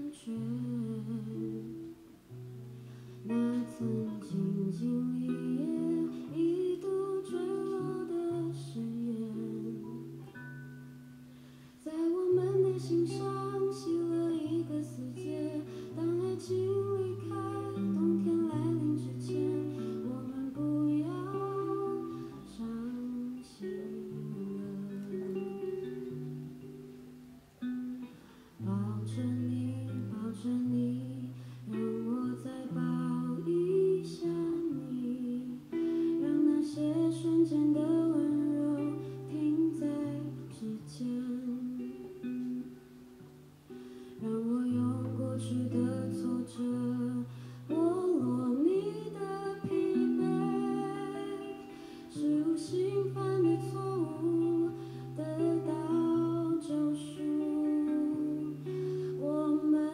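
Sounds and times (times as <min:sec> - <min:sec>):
woman singing a slow ballad: 0:00.0 - 0:10.5, 0:11.8 - 0:26.4, 0:28.6 - 0:42.8, 0:43.7 - 0:59.9
soft guitar accompaniment: 0:00.0 - 0:59.9.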